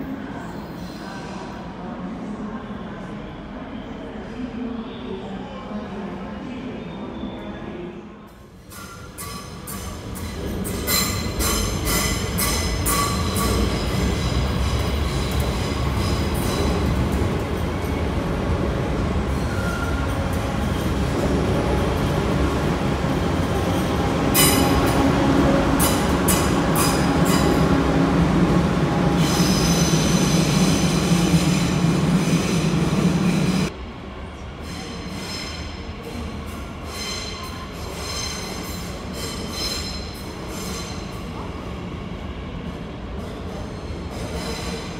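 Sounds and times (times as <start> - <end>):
high wheel squeal: 19.4 - 20.2.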